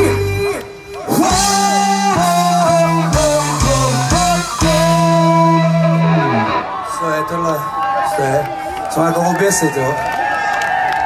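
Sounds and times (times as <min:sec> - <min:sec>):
rock band playing chord stabs: 0:00.0 - 0:06.8.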